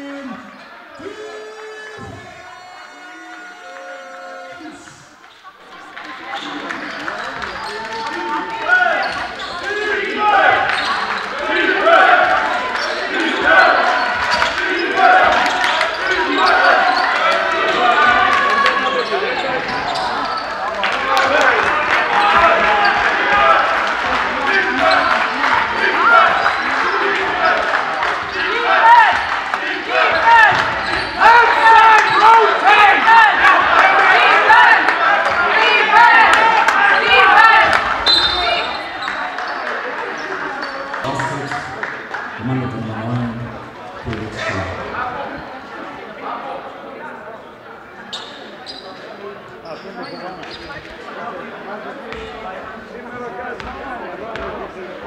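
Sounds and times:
crowd shouting: 0:07.6 - 0:40.4.

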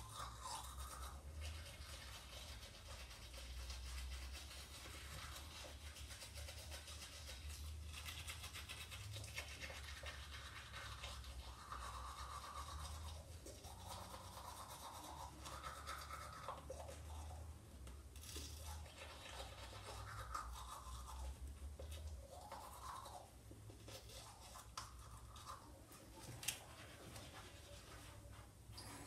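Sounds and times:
toothbrush scrubbing teeth: 0:00.0 - 0:17.6, 0:18.2 - 0:29.0.

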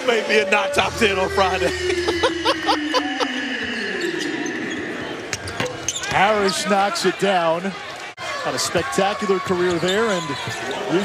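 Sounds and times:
arena crowd noise: 0:00.0 - 0:11.0
tone sliding down in pitch: 0:00.4 - 0:03.8.

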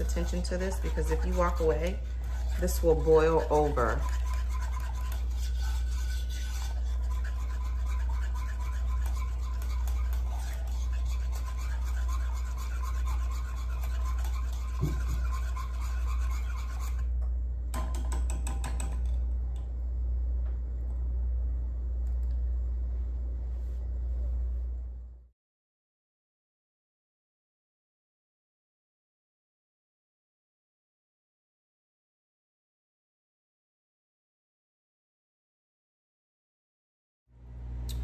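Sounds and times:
whisk scraping a pot: 0:00.0 - 0:17.1
steady low hum: 0:00.0 - 0:25.3, 0:37.4 - 0:38.0.

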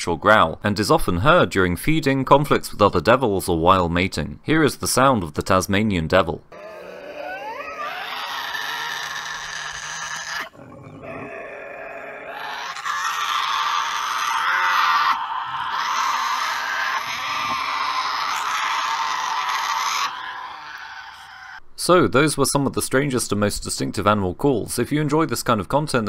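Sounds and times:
animals screeching and growling: 0:06.5 - 0:21.6.

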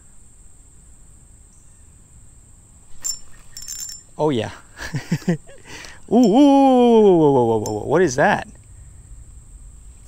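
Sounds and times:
fishing reel clicking: 0:03.0 - 0:04.0
sharp metallic click with ringing: 0:03.0 - 0:04.2, 0:05.8 - 0:06.4, 0:07.5 - 0:07.9.

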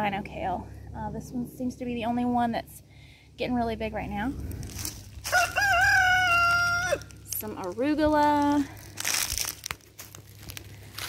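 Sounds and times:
rooster crowing: 0:05.2 - 0:07.2.

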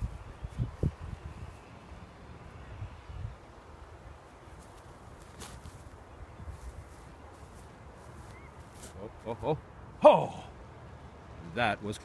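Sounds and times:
faint chirp: 0:08.2 - 0:08.6.

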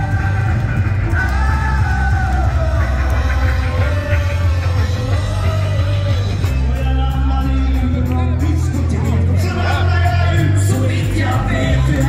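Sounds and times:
live rock band playing: 0:00.0 - 0:12.0
male lead vocal: 0:00.0 - 0:12.0.

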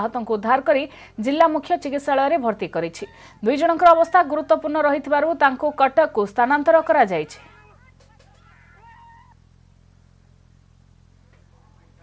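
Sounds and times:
low hum with hiss: 0:00.0 - 0:12.0
high-pitched wavering cry: 0:06.8 - 0:09.4.

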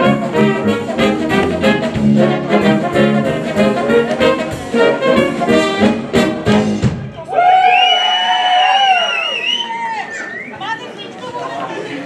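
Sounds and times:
crowd chatter in hall: 0:00.0 - 0:12.0.

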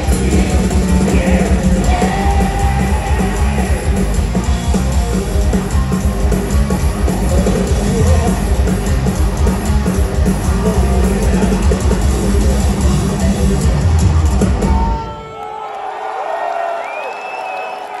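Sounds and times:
crowd cheering: 0:00.0 - 0:08.1, 0:13.0 - 0:18.0
heavy metal band playing live: 0:00.0 - 0:15.3.

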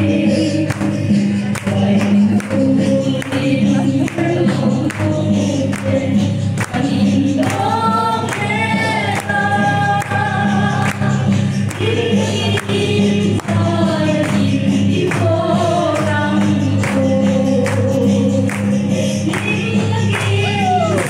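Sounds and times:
group singing along: 0:00.0 - 0:21.0
hands clapping on a beat: 0:00.0 - 0:21.0
woman singing into microphone: 0:00.0 - 0:21.0.

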